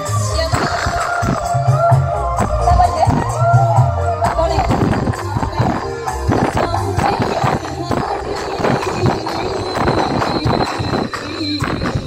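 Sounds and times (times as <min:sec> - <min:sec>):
loud procession music: 0:00.0 - 0:12.0
fast dense drumming: 0:00.5 - 0:12.0.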